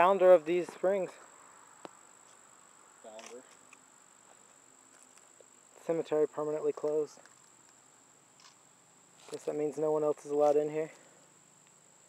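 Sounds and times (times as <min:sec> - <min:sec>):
insects trilling: 0:00.0 - 0:12.0.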